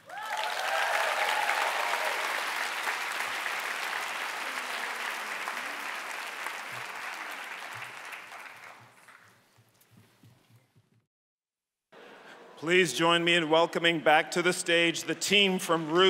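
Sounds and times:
person cheering: 0.0 - 2.4
audience applauding: 0.0 - 9.4.

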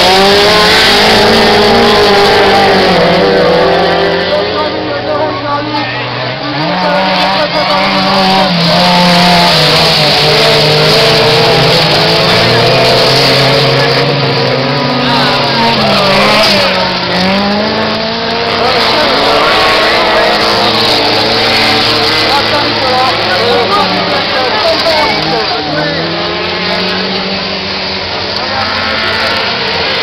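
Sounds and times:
race car engines revving: 0.0 - 30.0.

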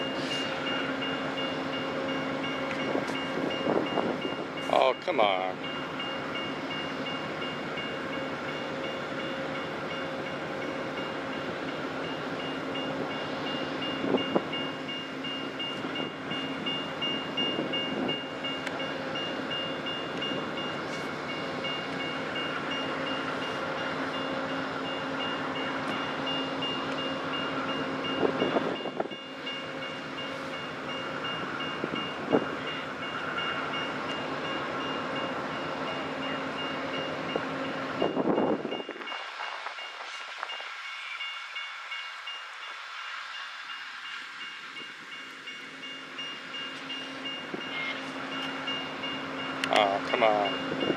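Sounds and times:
crossing bell ringing: 0.0 - 50.9
diesel train engines humming: 0.0 - 50.9.

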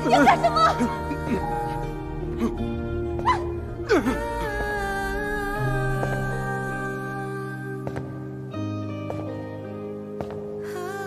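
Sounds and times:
sustained drama score: 0.0 - 9.6
whimper-like vocal cries: 3.2 - 4.3.

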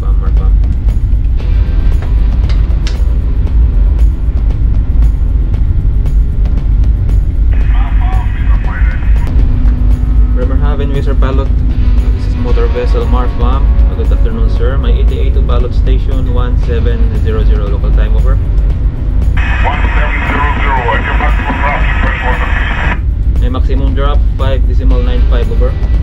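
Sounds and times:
background music: 0.0 - 26.0
ship low rumble: 0.0 - 26.0
voice-like sounds: 7.6 - 9.3, 19.4 - 23.0.

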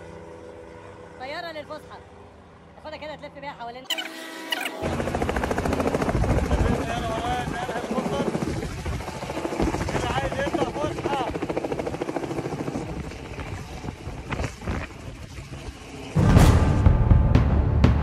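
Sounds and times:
helicopter rotor beating: 3.9 - 16.2.

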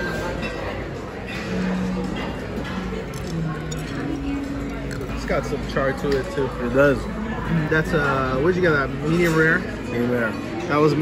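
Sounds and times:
clinks of cutlery and dishes: 0.0 - 6.6, 7.9 - 11.0
murmur of voices: 0.0 - 11.0.

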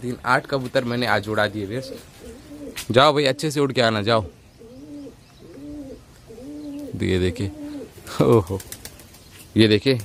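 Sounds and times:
pigeons cooing: 0.9 - 9.4.

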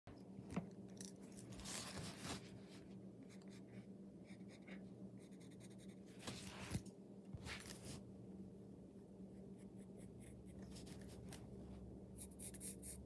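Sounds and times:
faint steady hum: 0.1 - 13.0
pencil scratching on paper plate: 12.2 - 13.0.

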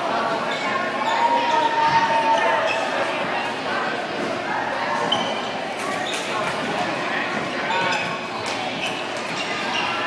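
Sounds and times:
many voices talking: 0.0 - 10.0.

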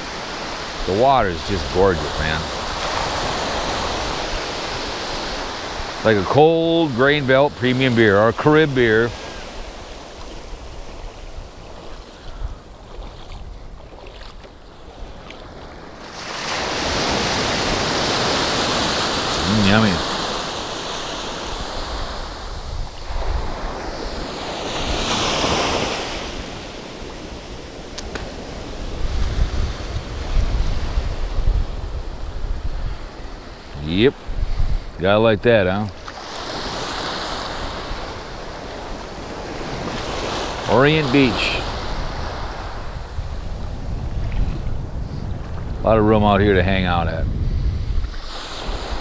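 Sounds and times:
wind buffeting microphone: 0.0 - 36.0, 36.6 - 49.0
small waves washing over sand: 0.0 - 46.2, 46.8 - 49.0.

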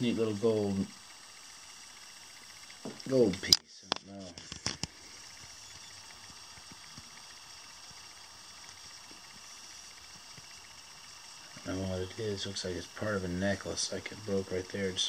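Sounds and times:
small clicks: 0.9 - 13.1
person speaking: 2.9 - 4.5, 11.6 - 15.0.

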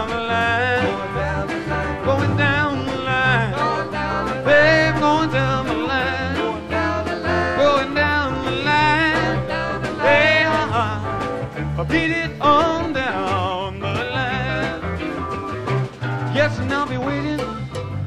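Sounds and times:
rock band playing live: 0.0 - 18.0
lead guitar bending lines: 0.8 - 16.5.

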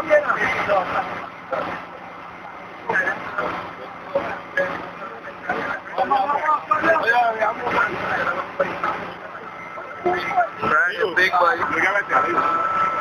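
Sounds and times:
people talking indistinctly: 0.0 - 13.0.

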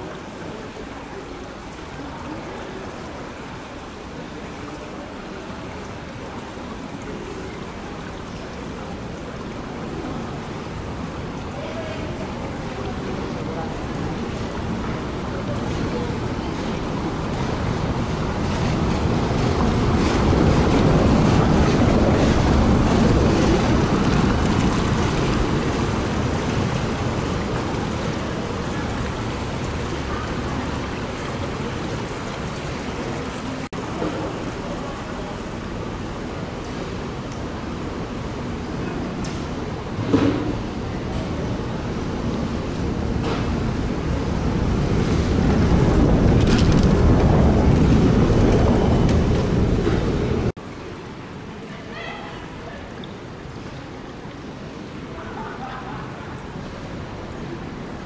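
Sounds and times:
trolleybus tyres on cobblestones: 44.0 - 50.5.

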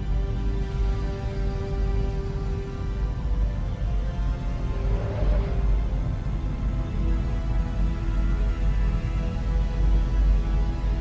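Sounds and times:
dark ambient synthesizer drone: 0.0 - 11.0.

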